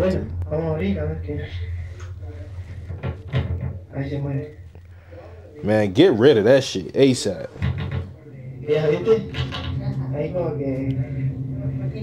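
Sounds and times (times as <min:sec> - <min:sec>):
wooden door rattling and knocking: 0:07.6 - 0:08.1.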